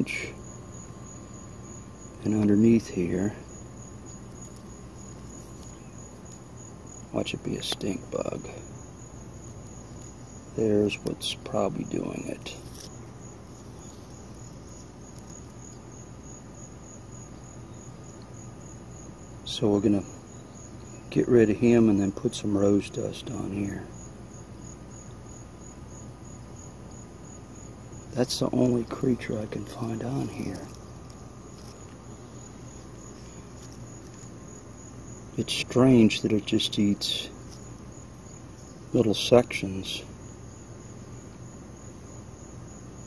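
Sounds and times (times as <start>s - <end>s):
insects trilling: 0.0s - 43.0s.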